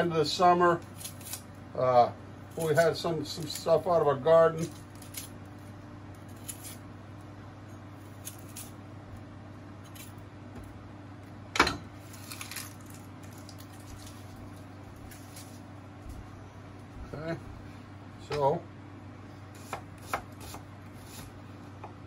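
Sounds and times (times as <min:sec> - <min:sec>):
low steady hum: 0:00.0 - 0:22.0
onion peeling crackle: 0:00.7 - 0:01.9, 0:02.5 - 0:09.2, 0:09.8 - 0:10.2, 0:12.0 - 0:16.2, 0:19.5 - 0:21.4
knife cutting onion on board: 0:19.6 - 0:21.4.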